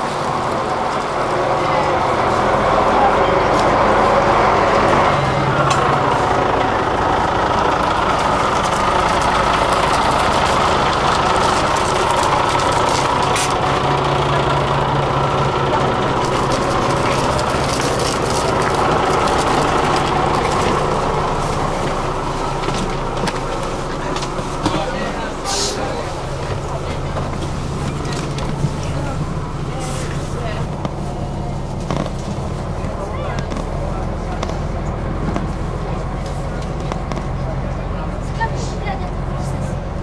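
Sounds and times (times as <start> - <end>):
bus engine running: 0.0 - 40.0.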